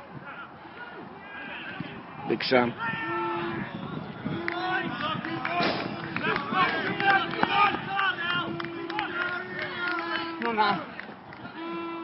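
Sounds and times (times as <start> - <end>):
people shouting and calling: 0.1 - 12.0.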